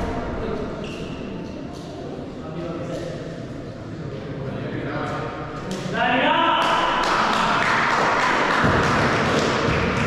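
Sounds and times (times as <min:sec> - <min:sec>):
hand-clapping: 0:06.6 - 0:10.0.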